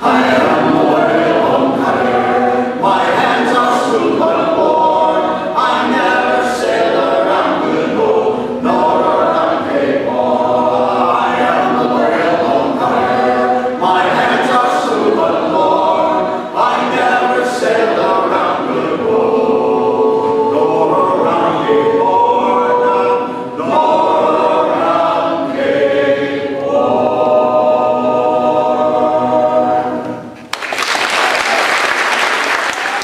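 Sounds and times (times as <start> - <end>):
men singing a cappella harmony: 0.0 - 30.2.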